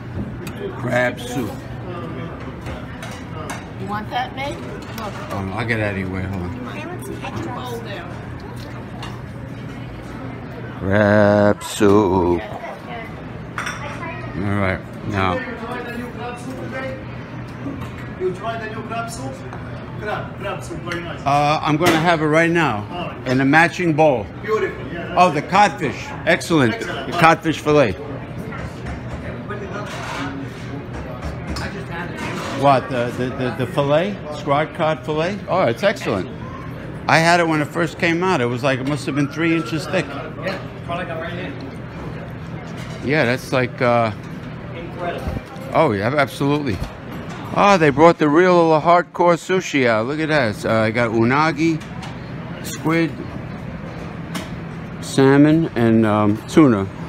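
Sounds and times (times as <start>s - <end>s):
indistinct voices of diners: 0.0s - 57.0s
restaurant chatter: 0.0s - 57.0s.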